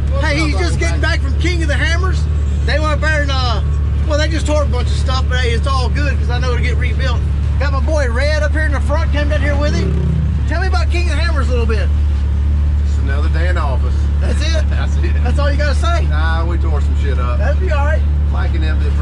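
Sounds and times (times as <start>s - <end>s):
man talking: 0.0s - 12.0s, 12.8s - 19.0s
vehicle engine droning: 0.0s - 19.0s.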